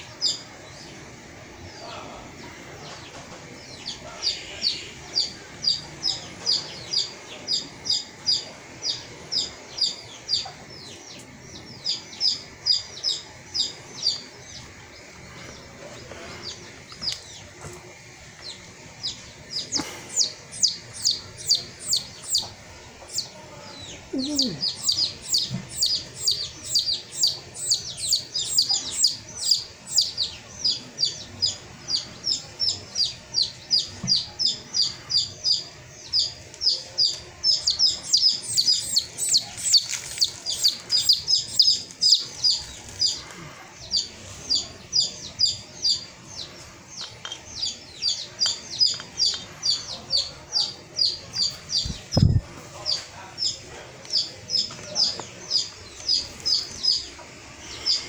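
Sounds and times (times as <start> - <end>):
bird chirping: 0.0 - 58.0.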